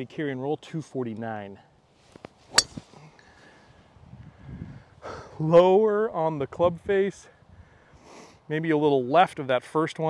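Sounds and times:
golf driver striking ball: 0:02.5 - 0:02.9.

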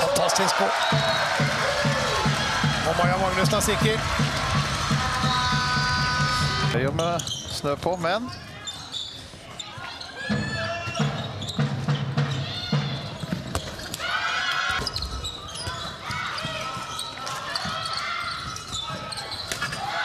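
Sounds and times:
voices of players and spectators: 0:00.0 - 0:20.0.

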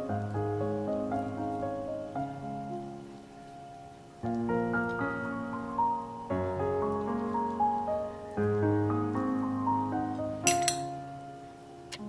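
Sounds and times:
soft piano music: 0:00.0 - 0:12.0
metal spoon clinking on plate: 0:10.4 - 0:10.9.

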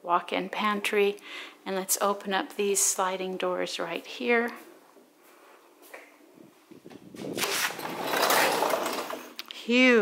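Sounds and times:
sliding glass door rolling open: 0:07.2 - 0:09.4.

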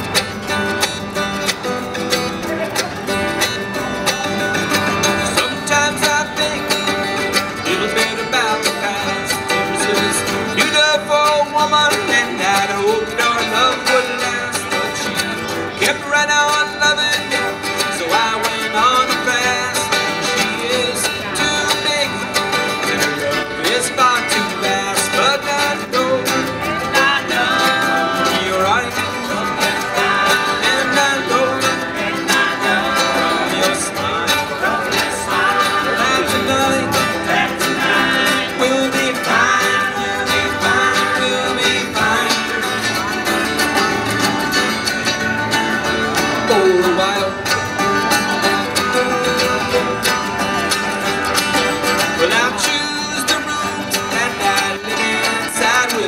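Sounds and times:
picked banjo: 0:00.0 - 0:56.0
strummed acoustic guitars: 0:00.0 - 0:56.0.

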